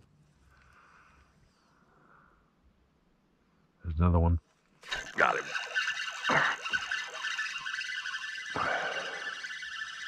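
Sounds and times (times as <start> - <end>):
electric motor whining: 4.9 - 10.0.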